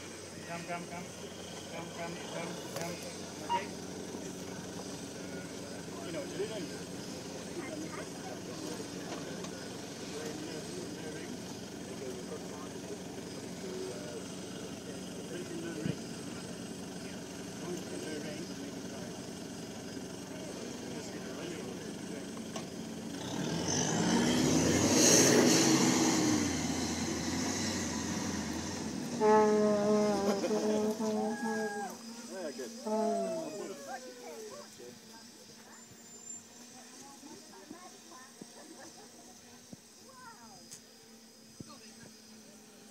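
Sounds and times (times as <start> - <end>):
faint voices: 0.0 - 42.9
vehicle engine running at low revs: 0.0 - 42.9.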